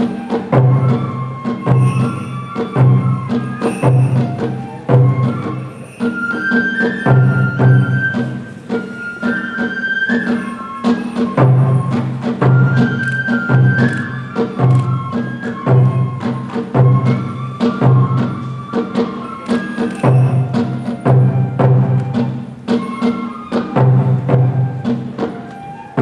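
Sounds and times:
bamboo flute melody: 0.0 - 26.0
steady drum beat: 0.0 - 26.0.

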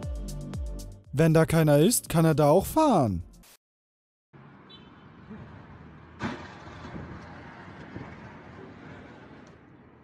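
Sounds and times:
outdoor street noise: 4.3 - 10.0.

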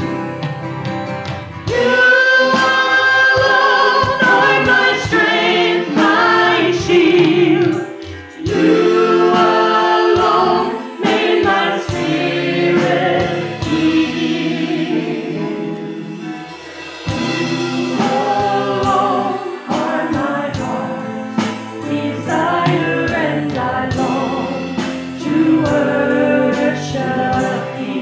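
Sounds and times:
women singing a gospel song: 1.7 - 16.1, 17.1 - 28.0.

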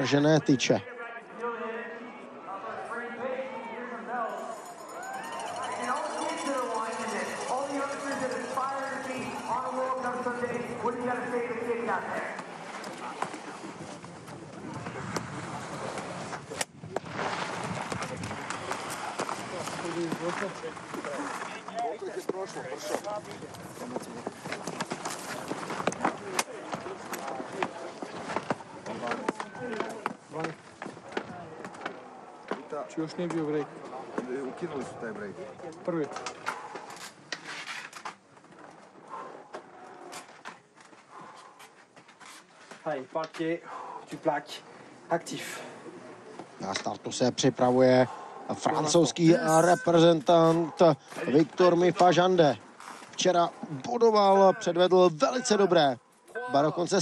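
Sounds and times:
sharp clicks and knocks of ski gear: 17.8 - 33.5.

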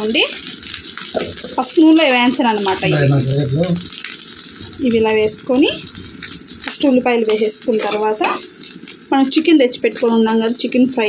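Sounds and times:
rice and onions sizzling in a pan: 0.0 - 11.0
person speaking: 1.2 - 3.9, 4.6 - 6.0, 6.7 - 8.4.

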